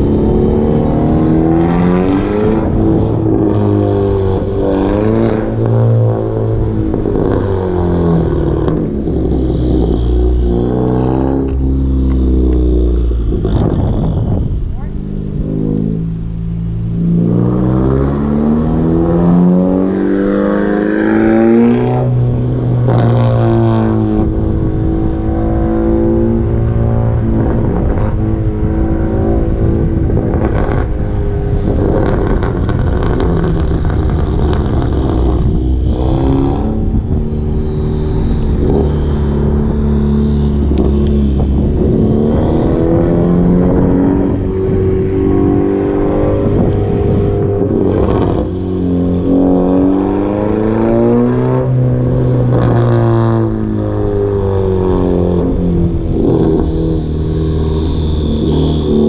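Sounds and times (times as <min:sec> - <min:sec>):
car engine accelerating hard: 0:00.0 - 0:59.0
exhaust pops and crackles: 0:08.2 - 0:15.4, 0:29.1 - 0:44.9, 0:46.2 - 0:48.6, 0:52.4 - 0:53.8.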